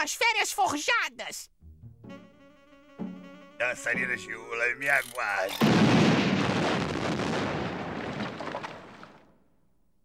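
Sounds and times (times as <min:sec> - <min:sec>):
cartoon dynamite explosion: 0:05.6 - 0:09.2.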